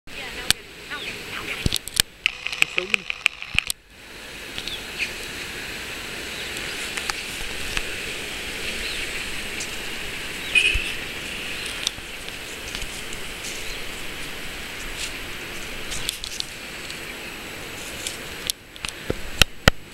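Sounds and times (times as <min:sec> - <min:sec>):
steady high-pitched hiss: 0:00.1 - 0:19.9
small clicks: 0:01.6 - 0:03.8.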